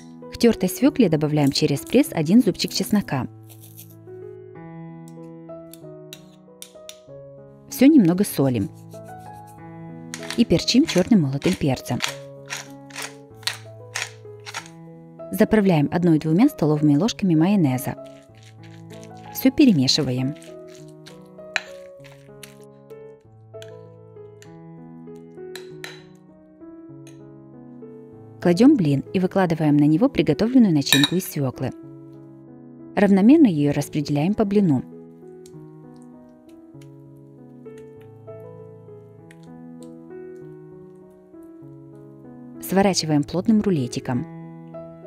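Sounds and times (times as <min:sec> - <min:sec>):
soft keyboard background music: 0:00.0 - 0:45.0
spoon scraping metal garlic press: 0:03.4 - 0:04.0, 0:10.1 - 0:14.8, 0:17.9 - 0:22.6, 0:30.9 - 0:31.2
metal spoon clinking on plate: 0:06.2 - 0:07.0, 0:30.9 - 0:31.2.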